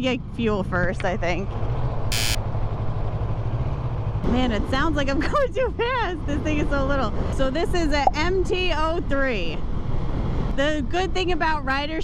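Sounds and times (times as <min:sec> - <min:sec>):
motorcycle engine running: 0:00.0 - 0:07.0.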